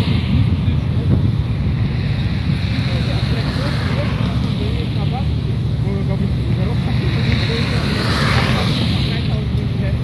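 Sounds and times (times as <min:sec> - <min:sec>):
faint voices: 0:00.0 - 0:10.0
passing street traffic: 0:00.0 - 0:10.0
wind noise on microphone: 0:00.0 - 0:10.0.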